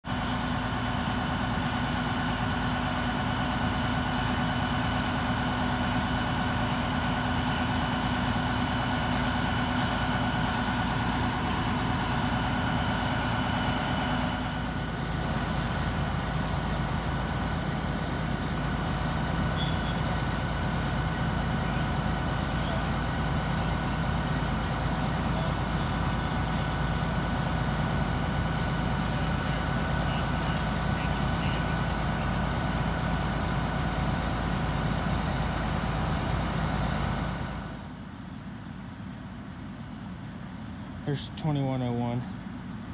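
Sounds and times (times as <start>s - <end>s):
diesel engine running: 0.0s - 42.9s.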